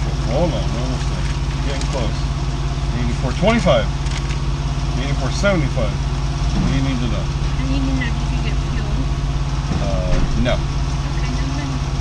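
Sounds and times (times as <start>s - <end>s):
truck diesel engine idling: 0.0s - 12.0s.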